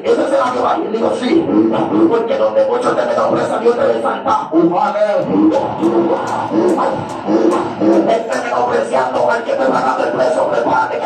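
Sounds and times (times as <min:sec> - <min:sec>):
voices: 0:00.0 - 0:11.0
conga drums: 0:05.2 - 0:10.9.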